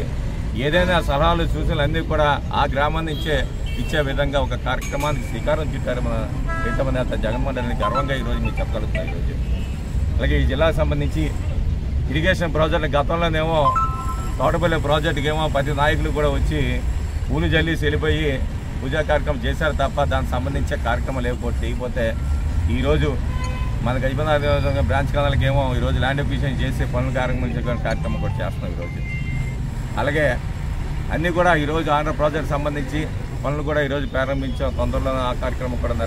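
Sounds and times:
man talking: 0:00.0 - 0:09.6, 0:12.1 - 0:23.2, 0:23.9 - 0:29.2, 0:31.1 - 0:36.0
street traffic: 0:00.0 - 0:36.0
man speaking: 0:04.0 - 0:09.6, 0:12.5 - 0:16.8, 0:25.3 - 0:29.2
brief steady tone: 0:13.6 - 0:14.6.

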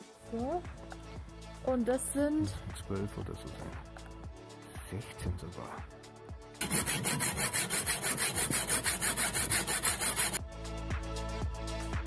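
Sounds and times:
music with a steady beat: 0:00.0 - 0:12.0
hacksaw cutting metal: 0:06.6 - 0:10.4.

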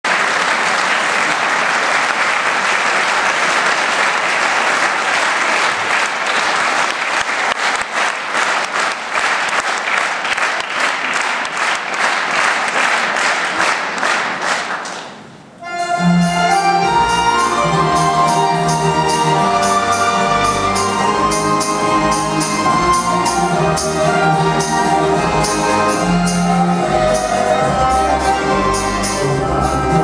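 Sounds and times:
audience applauding: 0:00.0 - 0:15.4.

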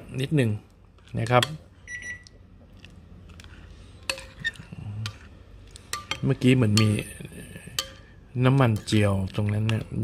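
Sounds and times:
metal spoon clinking on ceramic bowl: 0:07.7 - 0:09.9.

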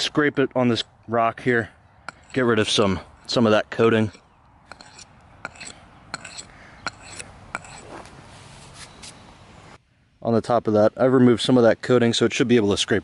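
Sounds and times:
knife spine scraping on rock: 0:02.1 - 0:09.2.

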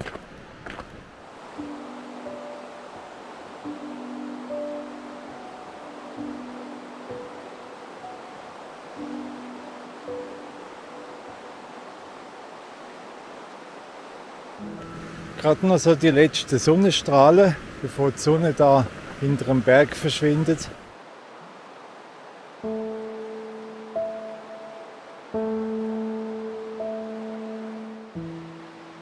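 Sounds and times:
river water rushing: 0:00.0 - 0:29.0
soft slow background music: 0:01.2 - 0:17.1, 0:21.9 - 0:29.0.

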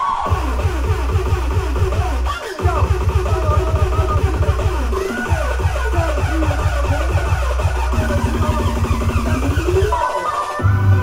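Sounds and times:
electronic dance music: 0:00.0 - 0:11.0
wavering synth lines: 0:00.0 - 0:11.0
heavy bass beat: 0:00.2 - 0:11.0.

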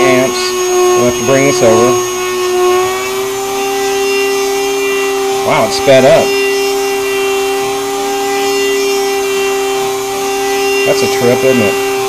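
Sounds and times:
rotary tool whining: 0:00.0 - 0:12.0.

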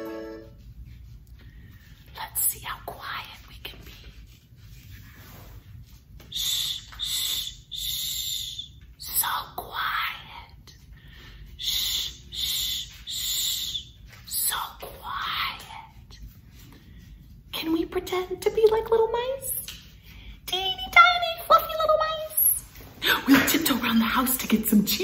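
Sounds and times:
woman whispering: 0:02.0 - 0:04.2, 0:09.0 - 0:10.9, 0:14.3 - 0:16.3, 0:17.5 - 0:19.7, 0:20.5 - 0:25.0.

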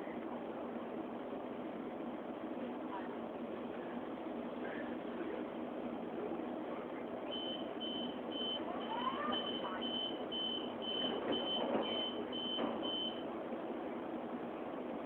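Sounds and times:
train door warning beeps: 0:07.3 - 0:13.3
train carriage rumble: 0:08.7 - 0:15.0.

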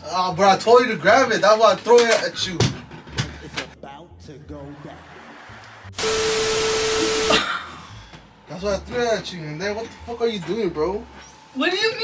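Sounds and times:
steady beep tone: 0:06.0 - 0:07.3.

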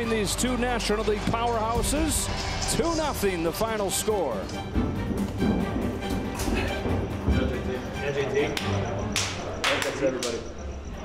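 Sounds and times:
background music: 0:00.0 - 0:11.0
voices in a corridor: 0:06.3 - 0:11.0
hands slapping in a high-five: 0:08.6 - 0:10.4.

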